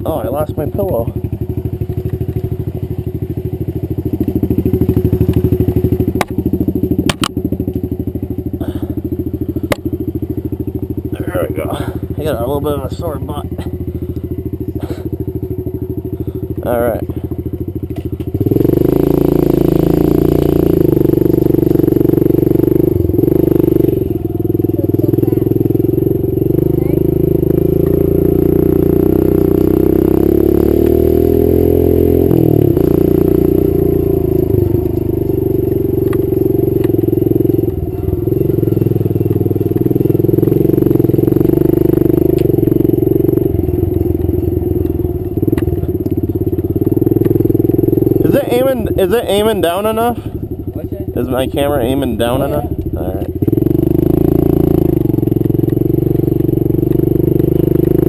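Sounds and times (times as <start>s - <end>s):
dirt bike engine revving: 0.0s - 58.0s.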